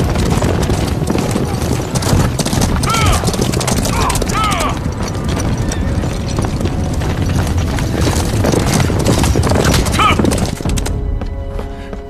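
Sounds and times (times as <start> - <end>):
horses galloping on dirt: 0.0 - 11.4.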